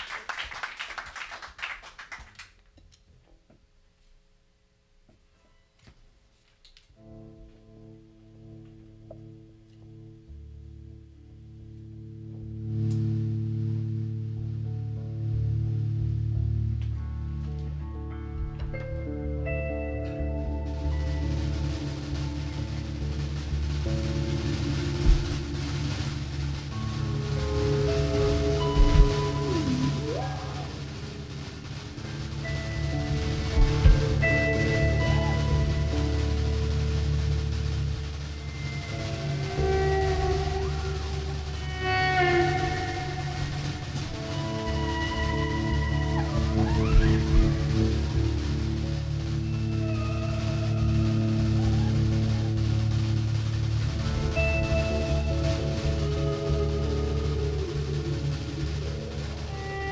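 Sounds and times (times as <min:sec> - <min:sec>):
instrumental rock band: 0:07.0 - 0:59.9
sharp drum hits: 0:23.2 - 0:36.3.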